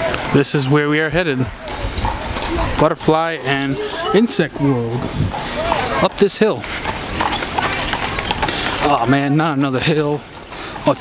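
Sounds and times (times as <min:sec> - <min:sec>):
horse hooves clip-clopping on pavement: 0:00.0 - 0:11.0.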